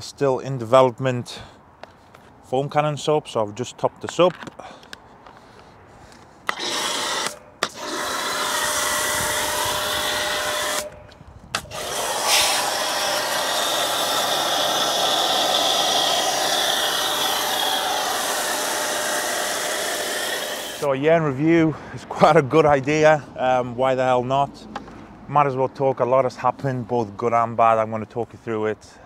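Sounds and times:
pressure washer pump running: 6.5 - 10.9, 11.6 - 20.9
pressure washer spraying foam: 6.5 - 10.9, 11.6 - 20.9.

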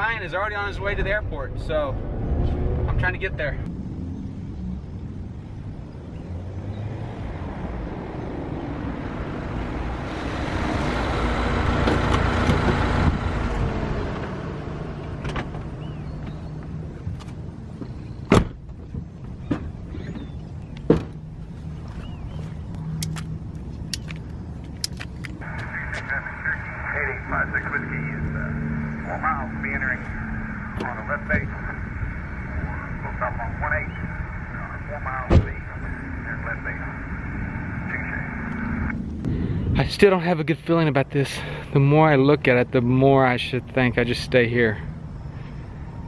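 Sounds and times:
car driving up: 0.8 - 39.8.

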